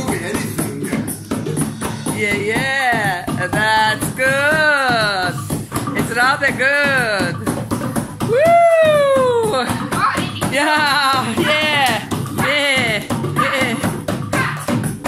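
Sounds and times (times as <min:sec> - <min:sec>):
wooden hand drum: 0:00.0 - 0:15.0.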